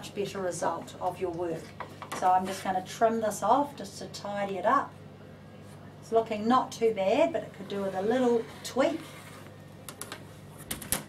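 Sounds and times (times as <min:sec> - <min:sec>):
rotary cutter rolling on mat: 0:07.5 - 0:09.5.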